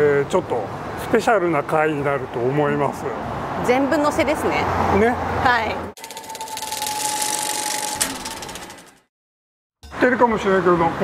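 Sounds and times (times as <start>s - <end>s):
rapid mechanical clatter: 6.0s - 9.1s
steady high tone: 6.0s - 9.1s.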